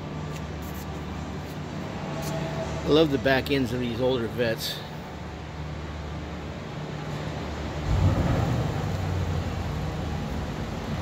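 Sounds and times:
low mechanical rumble with hum: 0.0s - 11.0s.

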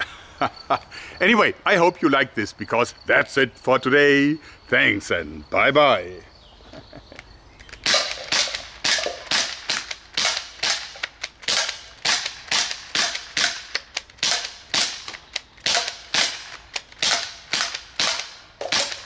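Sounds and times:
bb guns firing sharp pops: 7.6s - 19.0s.

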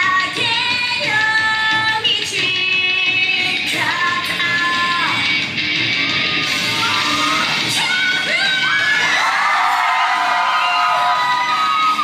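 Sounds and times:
rock backing music: 0.0s - 12.0s
audience shouting and cheering: 5.8s - 12.0s.

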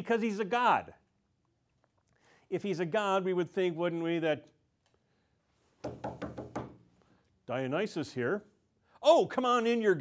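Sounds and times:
hand knocking: 5.8s - 6.8s.

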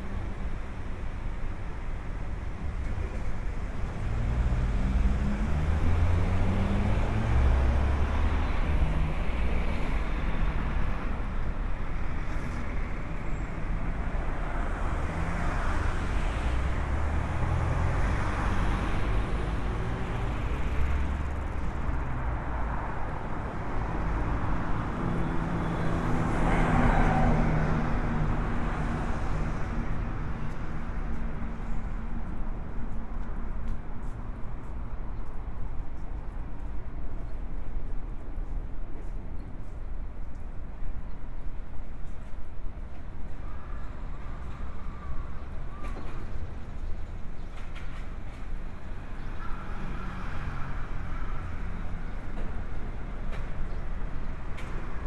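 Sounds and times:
road traffic passing: 0.0s - 55.0s.

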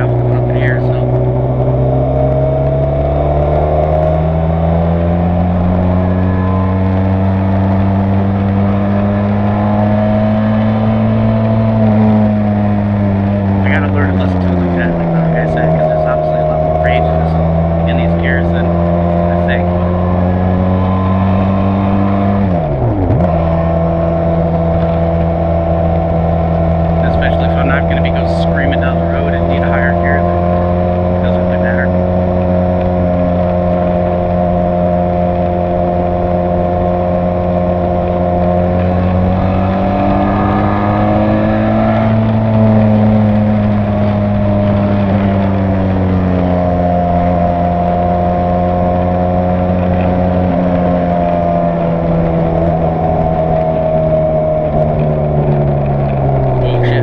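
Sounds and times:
motorcycle engine at road speed: 0.0s - 57.0s.

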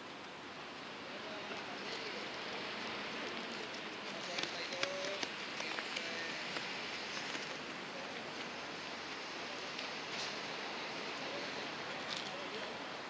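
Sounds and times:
faint distant voices: 0.9s - 13.0s.

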